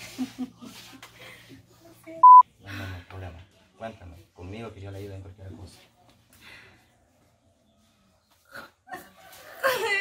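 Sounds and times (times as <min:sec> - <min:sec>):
censor bleep: 0:02.2 - 0:02.4.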